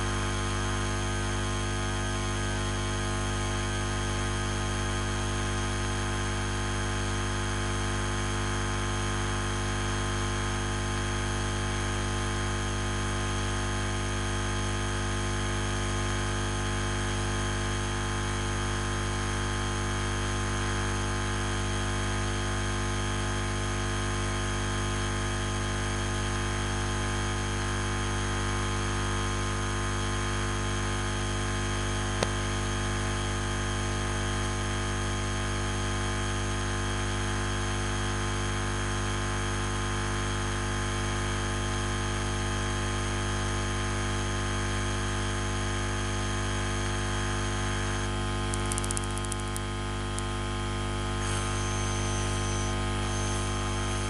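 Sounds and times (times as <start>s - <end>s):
electrical hum and hiss: 47.7s - 50.5s, 51.2s - 54.0s.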